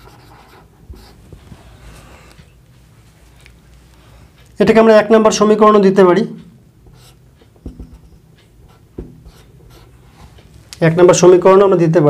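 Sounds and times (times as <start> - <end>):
marker writing on whiteboard: 0.0 - 2.7, 6.8 - 10.5
soft knocks: 7.6 - 8.2, 9.0 - 9.3.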